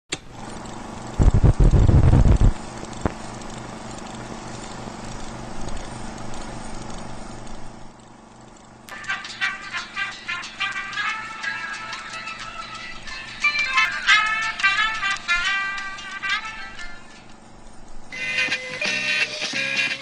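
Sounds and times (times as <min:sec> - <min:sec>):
film projector whirring: 0:00.1 - 0:20.0
music: 0:08.9 - 0:17.4, 0:18.1 - 0:20.0.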